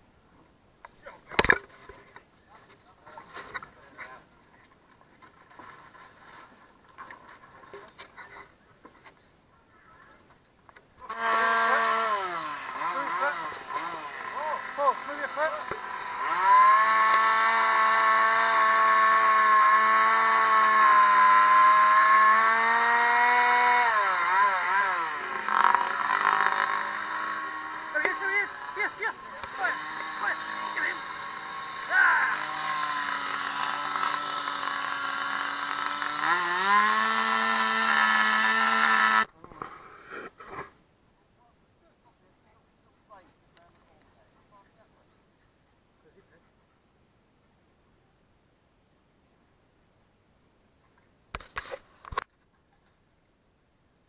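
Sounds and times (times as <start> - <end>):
engine running: 11.1 - 39.4.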